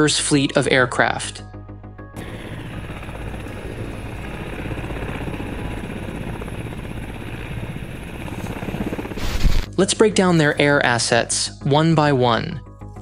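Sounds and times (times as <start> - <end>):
turbine noise: 2.2 - 9.7
helicopter rotor chop: 2.2 - 10.9.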